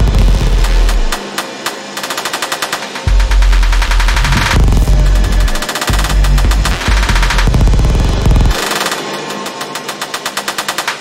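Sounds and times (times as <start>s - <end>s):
deep bass: 0.0s - 1.2s, 3.1s - 8.6s
glitchy drum-sample clicks: 0.0s - 11.0s.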